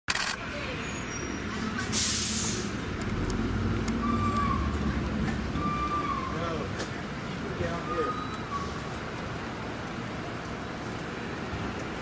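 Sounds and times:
traffic engine rumble: 0:00.1 - 0:12.0
truck air brakes hissing: 0:00.8 - 0:02.8.

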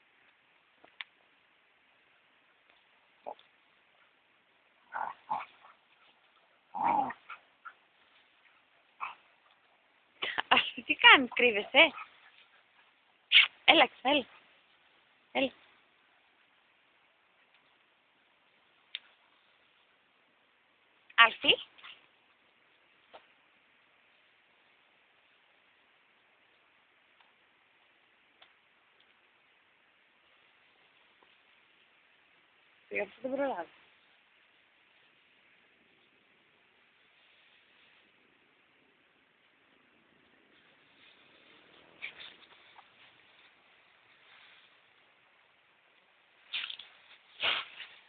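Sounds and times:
faint steady hiss: 0:00.0 - 0:48.0
faint clicks: 0:00.2 - 0:01.3, 0:17.4 - 0:17.8, 0:26.5 - 0:29.2
dog barking: 0:09.0 - 0:09.3.

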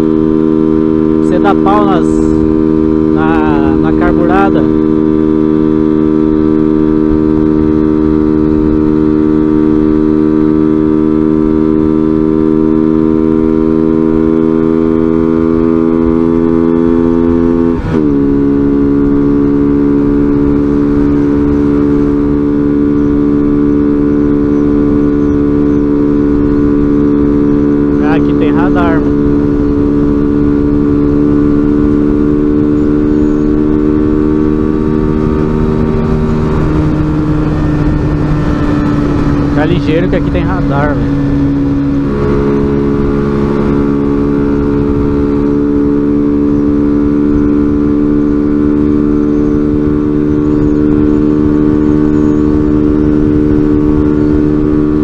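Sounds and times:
motorcycle engine running: 0:00.0 - 0:55.0
wind rumble on camera: 0:00.0 - 0:55.0.

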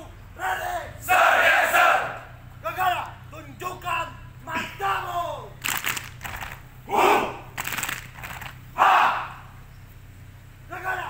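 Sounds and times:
men shouting in unison: 0:00.0 - 0:03.2, 0:04.4 - 0:05.6, 0:06.8 - 0:07.6, 0:08.7 - 0:09.6.

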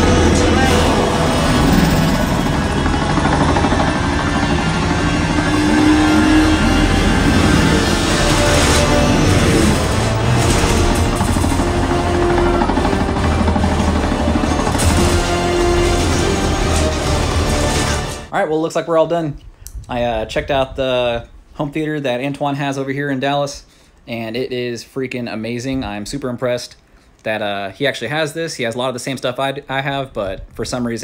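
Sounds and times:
helicopter: 0:00.0 - 0:18.3
vehicle action sounds: 0:00.0 - 0:18.3
film soundtrack music: 0:00.0 - 0:18.4.

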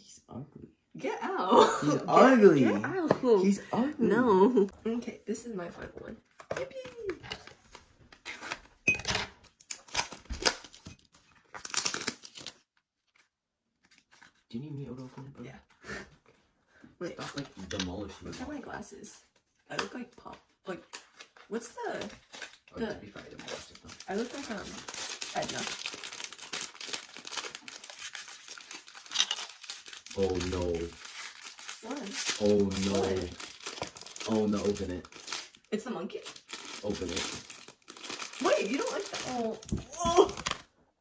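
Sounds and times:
packaging crinkling and ripping: 0:06.8 - 0:14.4, 0:20.9 - 0:40.8
foil wrapper crackling: 0:09.7 - 0:12.7, 0:22.0 - 0:40.7.

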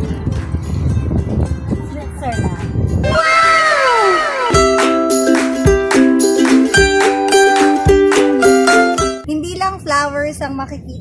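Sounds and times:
wind rumbling on microphone: 0:00.0 - 0:03.3.

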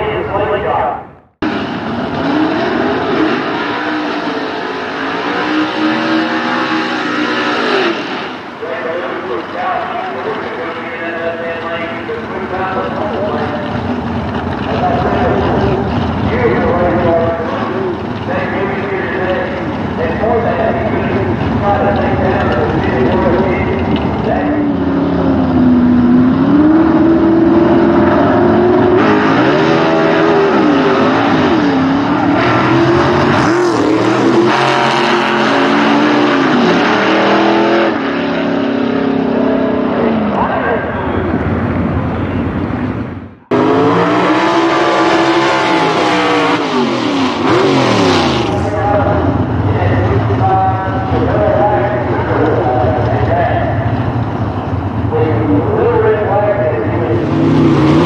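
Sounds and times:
drag car engines revving: 0:00.0 - 0:58.0.

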